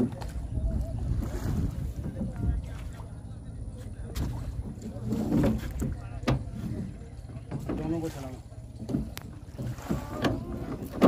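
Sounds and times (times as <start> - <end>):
wind on microphone: 0.0 - 3.1
wooden oars knocking and creaking: 0.0 - 3.1, 3.7 - 11.0.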